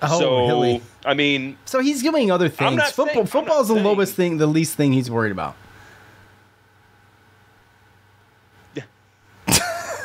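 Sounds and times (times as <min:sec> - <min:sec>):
people talking: 0:00.0 - 0:05.6
background hiss: 0:00.0 - 0:10.0.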